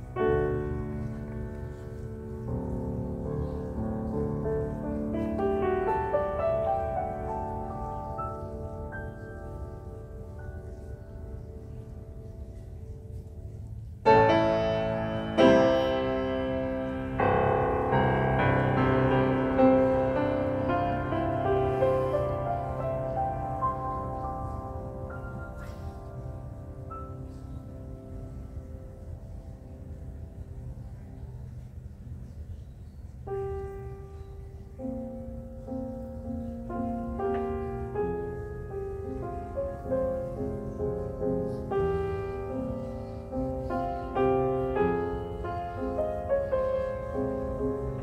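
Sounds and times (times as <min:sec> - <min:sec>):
grand piano playing slow classical piece: 0:00.0 - 0:48.0.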